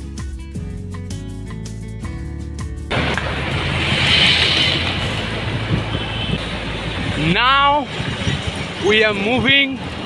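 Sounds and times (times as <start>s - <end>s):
road traffic noise: 2.9s - 10.0s
wind rumbling on microphone: 2.9s - 10.0s.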